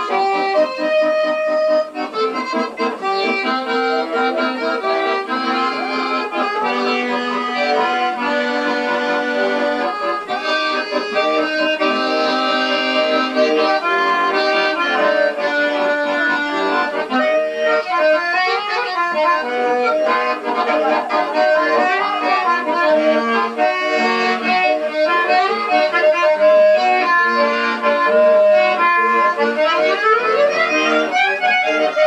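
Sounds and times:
accordion playing dance tune: 0.0 - 32.0.

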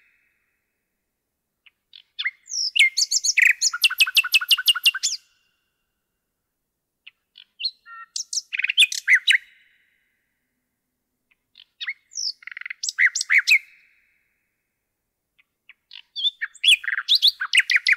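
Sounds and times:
nightingale singing: 0.0 - 0.5, 1.6 - 5.6, 7.0 - 10.1, 11.3 - 14.2, 15.4 - 17.9.

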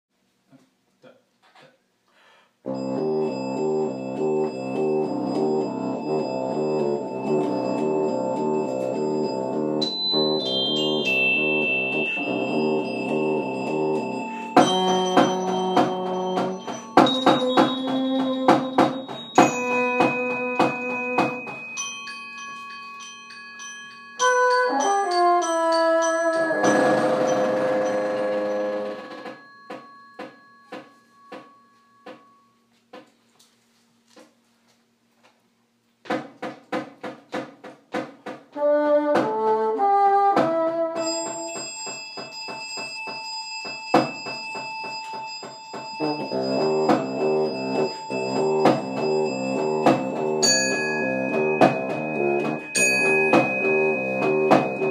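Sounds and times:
held chord: 2.7 - 32.7, 45.0 - 54.9
glockenspiel notes ringing: 2.7 - 32.9, 41.0 - 54.9.

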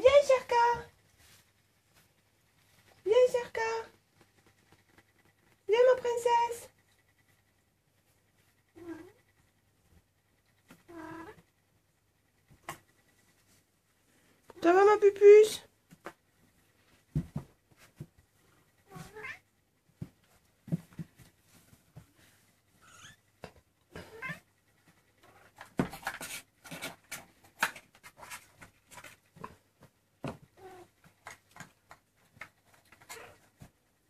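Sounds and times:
cat meowing: 18.9 - 19.4.

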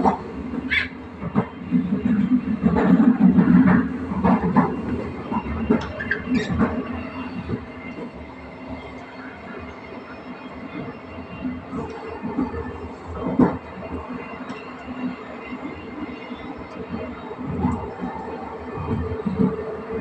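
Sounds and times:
train wheels rumbling: 0.0 - 20.0.

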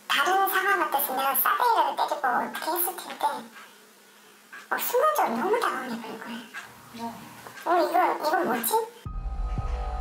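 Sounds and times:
woman speaking in pitch-altered voice: 0.1 - 3.6, 4.7 - 9.0.

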